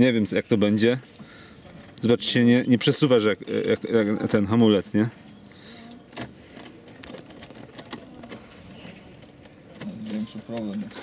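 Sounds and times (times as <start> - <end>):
car controls clicking and rattling: 6.1 - 11.0.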